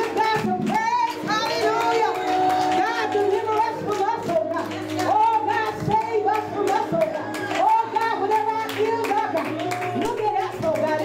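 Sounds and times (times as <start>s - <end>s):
woman singing gospel into microphone: 0.0s - 11.0s.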